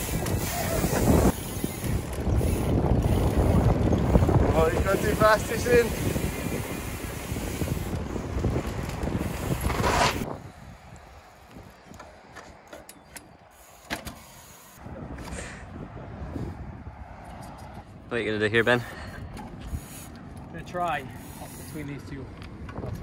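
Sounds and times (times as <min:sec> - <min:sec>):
wind rushing over microphone: 0:00.0 - 0:12.3, 0:14.8 - 0:23.0
bicycle tyre rumble on tarmac: 0:00.0 - 0:12.6, 0:18.6 - 0:23.0.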